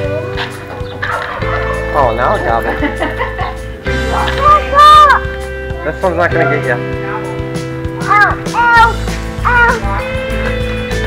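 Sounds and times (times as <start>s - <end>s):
turkey gobbling: 0.4s - 2.0s.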